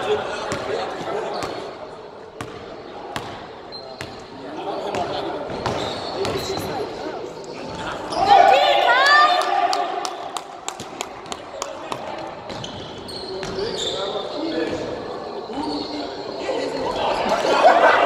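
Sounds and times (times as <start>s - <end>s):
players' voices: 0.0s - 18.0s
sneakers squeaking on hardwood: 3.2s - 8.3s, 12.4s - 16.2s.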